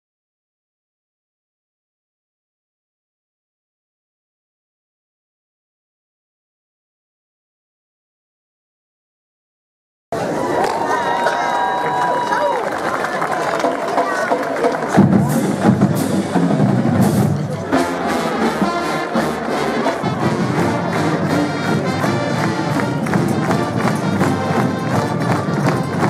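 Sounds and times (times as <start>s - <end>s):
crowd chatter: 10.1s - 26.0s
brass band music with drums: 13.2s - 26.0s.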